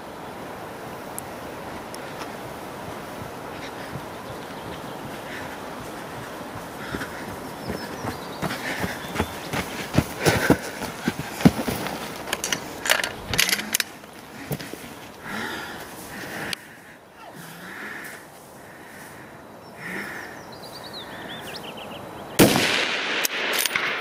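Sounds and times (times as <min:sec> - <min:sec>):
running footsteps: 0:01.4 - 0:20.2
hard breathing: 0:03.0 - 0:21.5
rifle handling: 0:12.2 - 0:13.9.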